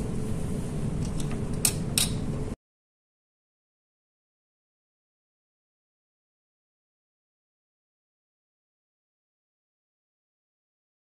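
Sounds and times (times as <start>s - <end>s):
room hum with low tone: 0.0s - 2.6s.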